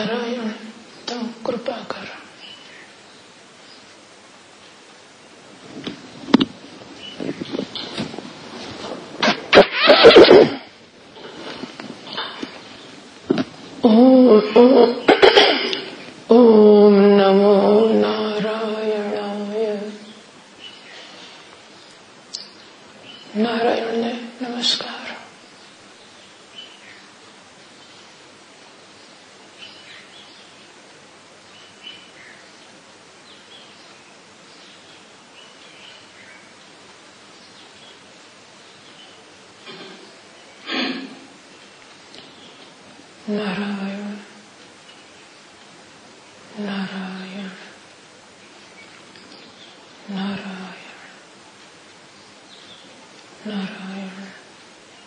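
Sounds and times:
background hiss: 0.0 - 55.0
faint bird chirps: 2.2 - 4.0.

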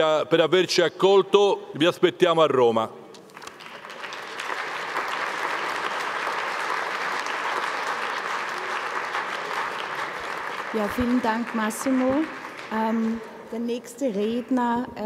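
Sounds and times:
audience applauding: 3.2 - 13.4.

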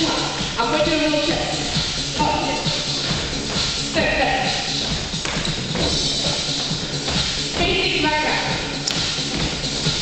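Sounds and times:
person speaking over music: 0.0 - 2.8
workout music: 0.0 - 10.0
feet stepping on plastic boards: 4.8 - 7.8, 8.9 - 10.0.

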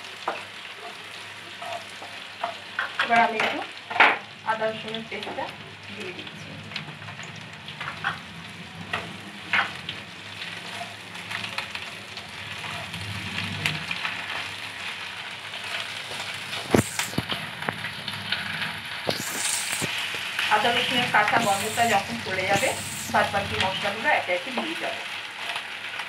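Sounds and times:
onions sizzling in oil: 0.0 - 26.0
spatula stirring and scraping: 0.8 - 2.6, 15.6 - 18.4, 19.0 - 24.0.

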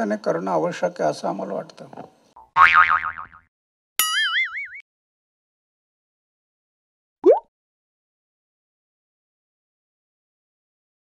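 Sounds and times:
cartoon boing sound effect: 2.4 - 4.8, 7.2 - 7.4.

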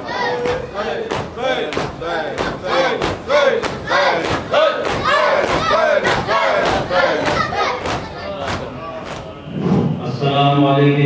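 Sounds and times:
crowd chanting: 0.0 - 10.1
hands slapping on chests: 0.4 - 9.3.

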